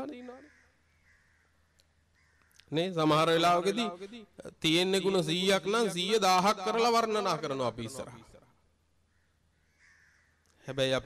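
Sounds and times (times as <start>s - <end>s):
man speaking: 0.0s - 0.5s, 2.7s - 8.4s, 10.6s - 11.0s
crow cawing: 0.0s - 2.7s, 9.0s - 10.7s.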